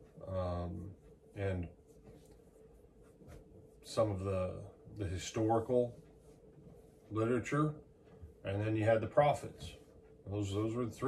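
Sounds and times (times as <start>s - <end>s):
faint scratchy rustles: 0.0s - 11.0s
man speaking: 0.2s - 1.8s, 3.9s - 6.0s, 7.1s - 7.8s, 8.4s - 11.0s.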